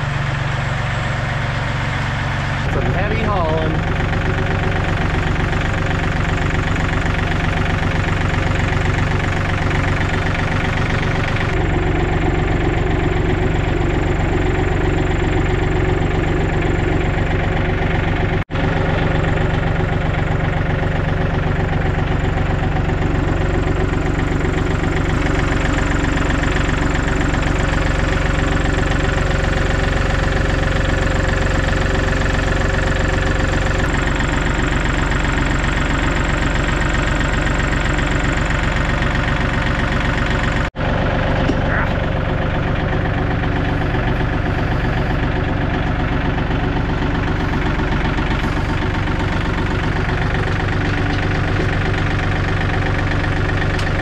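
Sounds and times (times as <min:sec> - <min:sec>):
tractor engine idling: 0:00.0 - 0:54.0.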